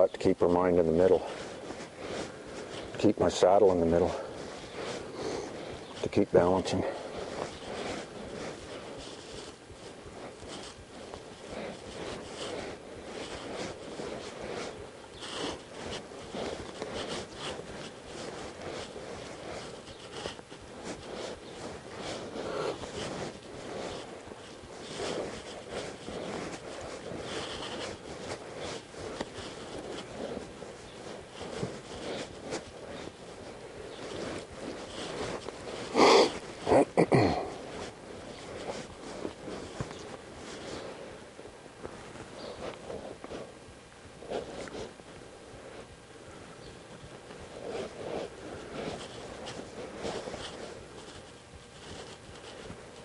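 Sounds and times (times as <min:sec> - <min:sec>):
horse shuffling in sand: 0:00.0 - 0:53.0
saddle creaks: 0:00.0 - 0:53.0.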